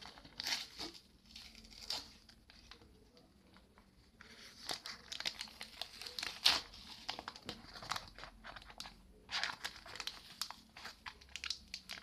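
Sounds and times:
packet rustling and crackling: 0:00.0 - 0:12.0.

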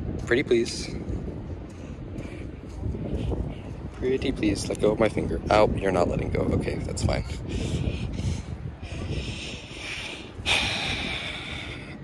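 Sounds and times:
wind rumble on microphone: 0:00.0 - 0:12.0
person breathing hissing breaths: 0:07.5 - 0:12.0.

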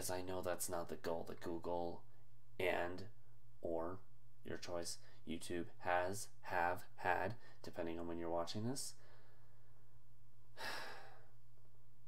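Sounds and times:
man sighing: 0:10.6 - 0:11.4.

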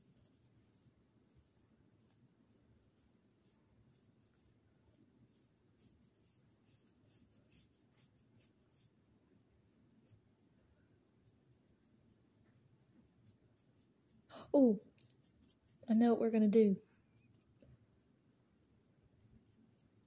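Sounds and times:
paintbrush swishing on paper: 0:00.0 - 0:10.3, 0:11.2 - 0:20.0
low room hum: 0:00.0 - 0:20.0.

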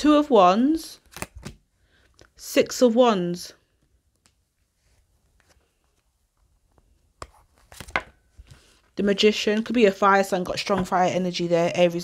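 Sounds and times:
cards snapping: 0:01.0 - 0:01.6
cards rustling: 0:01.0 - 0:02.3, 0:04.2 - 0:08.9.

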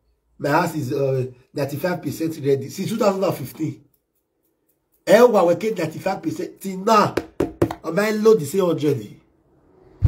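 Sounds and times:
man talking loudly: 0:05.1 - 0:07.2.

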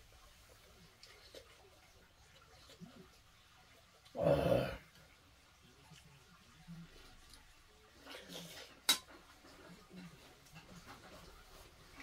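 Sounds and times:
quiet eating: 0:00.0 - 0:12.0.

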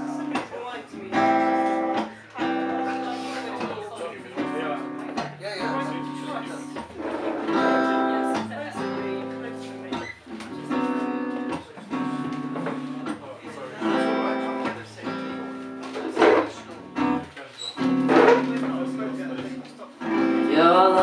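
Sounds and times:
guitar chords ringing: 0:00.0 - 0:21.0.

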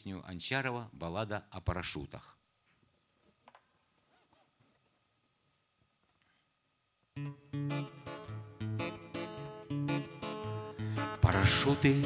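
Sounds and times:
acoustic guitar chords: 0:07.2 - 0:12.0.

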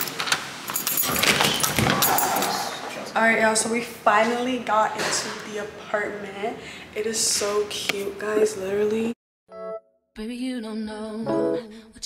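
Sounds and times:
keys jangling: 0:00.0 - 0:02.7.

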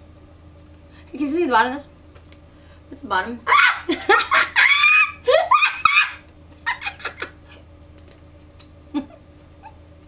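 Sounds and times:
steady low hum: 0:00.0 - 0:10.0
woman squealing: 0:03.5 - 0:06.2
woman laughing and giggling: 0:03.5 - 0:07.6, 0:08.9 - 0:09.3.

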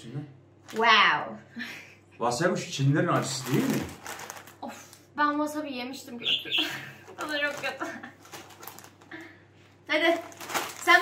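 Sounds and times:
foil crisp packets crinkling: 0:03.1 - 0:05.1, 0:07.0 - 0:09.3, 0:10.0 - 0:11.0.

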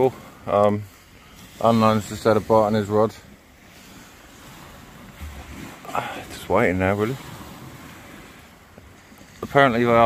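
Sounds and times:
sea waves: 0:00.0 - 0:10.0
wind: 0:00.0 - 0:10.0
wind buffeting microphone: 0:00.0 - 0:10.0.

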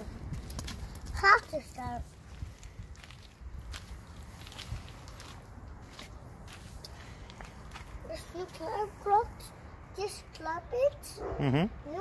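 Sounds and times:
footsteps crunching on gravel: 0:00.3 - 0:08.6.

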